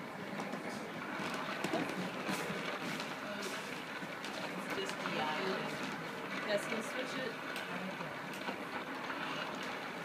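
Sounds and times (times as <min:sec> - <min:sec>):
background chatter of people: 0:00.0 - 0:10.0.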